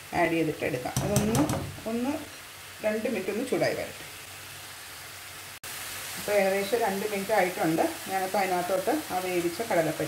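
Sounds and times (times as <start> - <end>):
paste sizzling in frying pan: 0.0 - 10.0.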